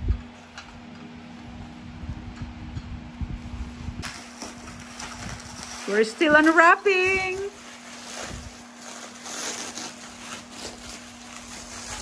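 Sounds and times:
steady low hum: 0.0 - 12.0
plastic wrapping crinkling: 4.0 - 12.0.

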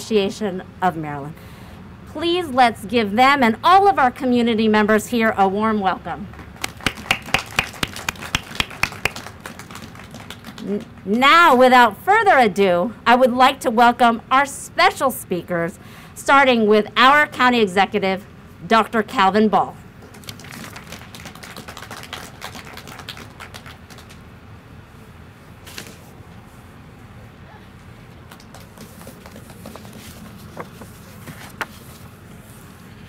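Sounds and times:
small group clapping: 6.3 - 11.1, 20.0 - 24.2, 28.2 - 30.0
small crowd applauding: 6.4 - 11.1, 20.0 - 24.2, 28.2 - 30.0.

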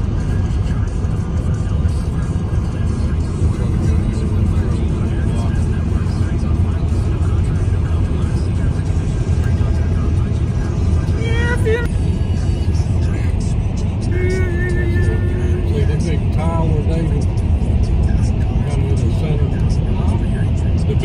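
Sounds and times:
car road and engine rumble: 0.0 - 21.0
person speaking: 10.8 - 12.0, 13.2 - 17.3.

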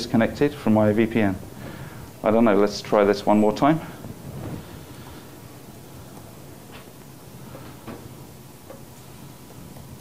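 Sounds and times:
lecture room hiss and rumble: 0.0 - 10.0.

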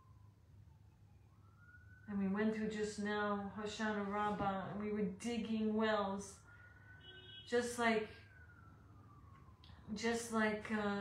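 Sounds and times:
faint distant siren wailing: 0.0 - 11.0.

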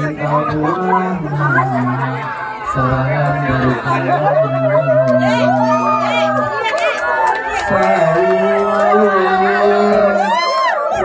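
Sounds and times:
man chanting over loudspeaker: 0.0 - 6.6, 7.6 - 11.0
crowd chatter: 0.0 - 11.0.

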